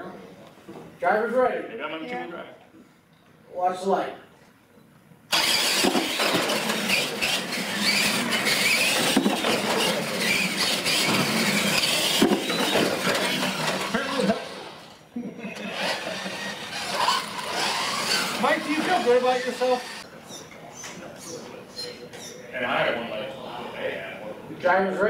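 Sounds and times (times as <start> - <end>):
tyres squealing on tile floor: 5.3 - 14.8, 15.9 - 22.4
toy truck motors whining: 5.3 - 15.0, 15.6 - 20.4.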